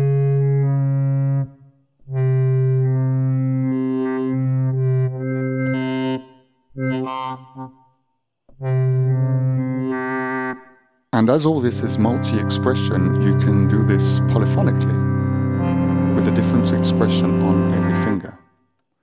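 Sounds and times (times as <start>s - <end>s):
wavetable synth low notes: 2.1s - 7.7s, 8.6s - 10.1s, 11.2s - 18.4s.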